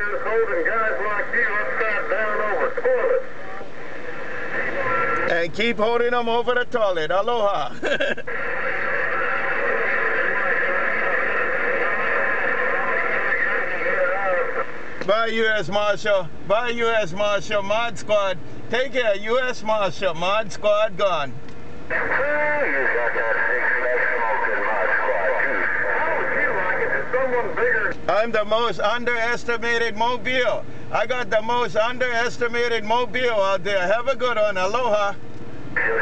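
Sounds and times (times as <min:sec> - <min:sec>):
voice over radio: 0:00.0 - 0:03.7, 0:08.3 - 0:21.3, 0:21.9 - 0:35.2, 0:35.8 - 0:36.0
radio static hiss: 0:00.0 - 0:36.0.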